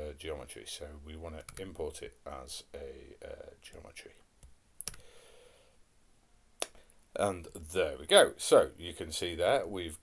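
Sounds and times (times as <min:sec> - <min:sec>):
computer mouse click: 0:04.4 - 0:05.0.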